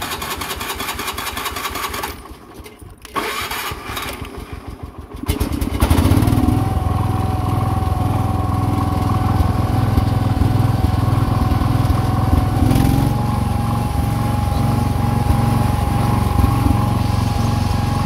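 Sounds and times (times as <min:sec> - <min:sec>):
lawn tractor engine cranking and running: 0:00.0 - 0:18.0.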